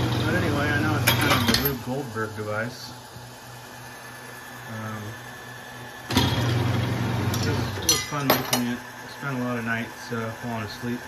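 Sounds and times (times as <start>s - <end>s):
loud mechanical running noise: 0.0s - 11.0s
machine motor humming: 0.0s - 11.0s.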